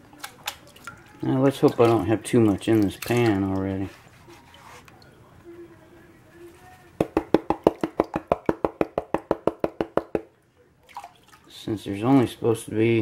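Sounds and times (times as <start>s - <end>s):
plastic pan knocking: 7.0s - 10.3s.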